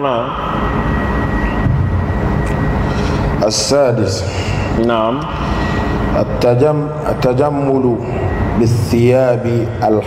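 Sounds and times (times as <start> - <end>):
faint high whine: 0.0 - 10.0
loud low background noise: 0.0 - 10.0.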